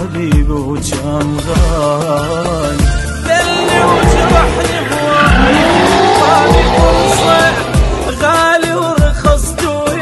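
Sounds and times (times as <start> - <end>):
music with thumping drum beat: 0.0 - 3.4, 6.0 - 10.0
car engine revving: 2.6 - 8.6
tyres squealing: 3.3 - 8.4.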